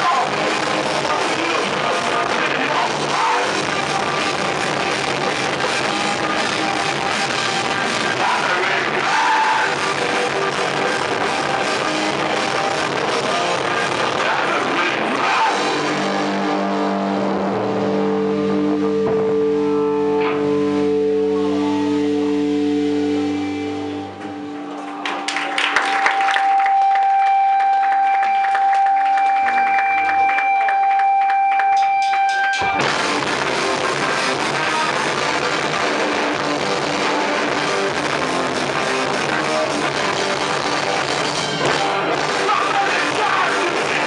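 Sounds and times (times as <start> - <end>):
distorted guitar chord ringing: 0.0 - 24.9, 26.4 - 44.0
hardcore band playing: 0.0 - 44.0.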